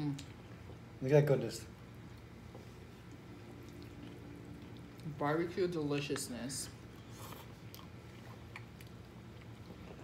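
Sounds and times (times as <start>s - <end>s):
people chewing: 1.9s - 5.2s, 5.8s - 10.0s.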